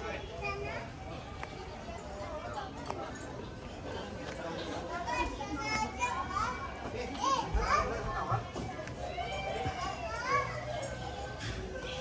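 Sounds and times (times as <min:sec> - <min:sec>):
people talking: 0:00.0 - 0:12.0
children shouting at play: 0:04.9 - 0:12.0.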